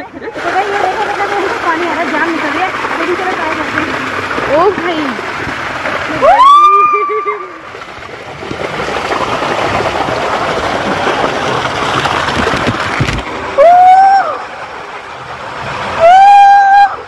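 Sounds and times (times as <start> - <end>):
water rushing down slide: 0.0 - 17.0.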